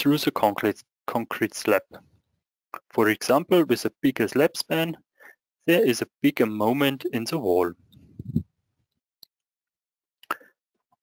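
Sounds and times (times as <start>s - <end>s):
mouth click into microphone: 10.2s - 10.5s.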